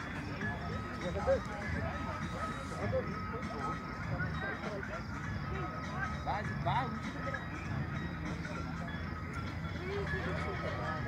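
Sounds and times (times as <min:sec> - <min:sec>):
chatter of voices: 0:00.0 - 0:11.0
faint music: 0:00.0 - 0:11.0.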